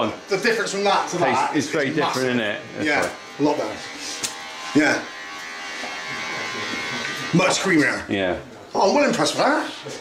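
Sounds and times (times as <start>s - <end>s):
electric hair clippers buzzing: 0.0s - 8.2s, 8.8s - 10.0s.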